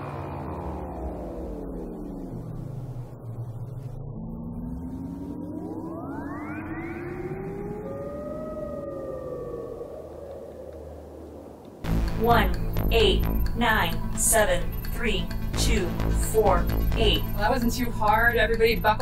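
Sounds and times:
low synthesizer drone: 0.0s - 19.0s
rising synthesizer sweeps: 0.0s - 19.0s
sinking held synth tones: 0.0s - 19.0s.

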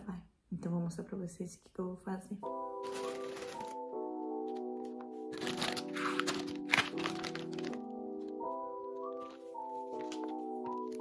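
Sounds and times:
background music: 2.1s - 11.0s
plastic packet crinkling: 2.8s - 3.9s, 4.5s - 7.9s, 9.0s - 11.0s.

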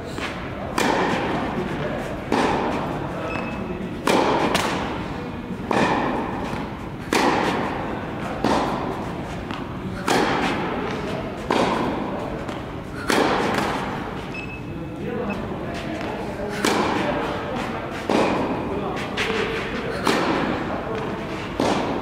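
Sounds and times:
tennis ball hit by rackets: 0.2s - 1.6s, 2.3s - 2.8s, 4.0s - 5.0s, 5.6s - 14.2s, 16.0s - 17.4s, 18.0s - 22.0s.

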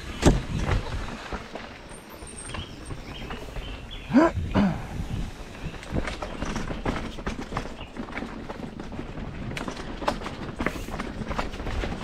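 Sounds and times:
mountain bike rattling: 0.0s - 4.3s, 4.9s - 12.0s.

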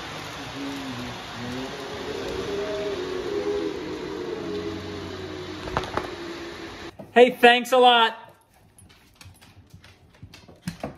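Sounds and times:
dogs shifting with clicks and taps: 8.3s - 10.9s.

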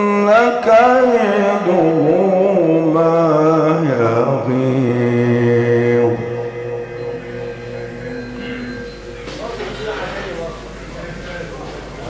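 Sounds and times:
man reciting melodically: 0.0s - 11.9s
quiet steady held tone: 5.0s - 12.0s.

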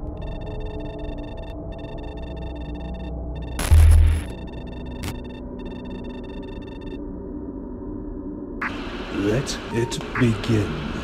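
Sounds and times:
low electronic drone: 0.0s - 11.0s
high electronic tones: 0.1s - 7.0s.

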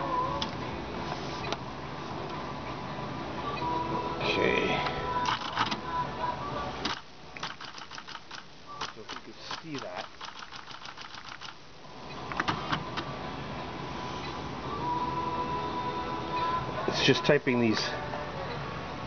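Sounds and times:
electronic typewriter clicking: 5.2s - 5.8s, 6.8s - 11.6s.

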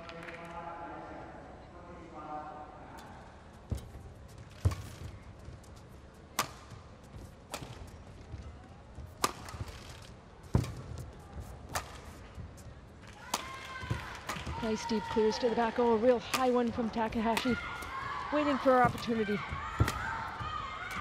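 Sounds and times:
shuttlecock hit with rackets: 6.3s - 6.7s, 11.7s - 12.1s.

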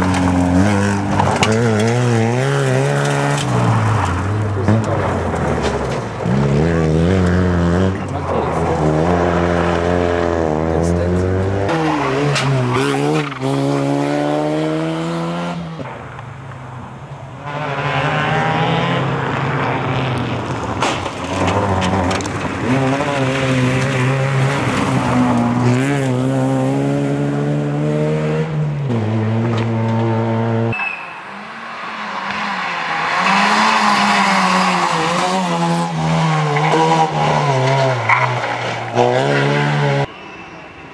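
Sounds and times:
rally car engine revving: 0.0s - 16.0s, 17.4s - 40.1s.

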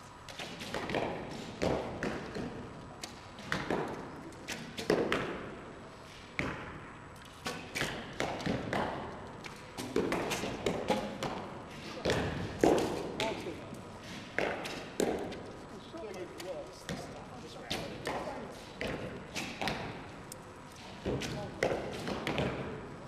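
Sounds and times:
arrows striking targets: 17.7s - 20.0s.

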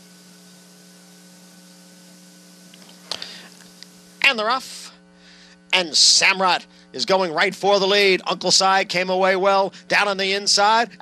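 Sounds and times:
background hiss: 0.0s - 11.0s
electrical hum: 0.0s - 11.0s.

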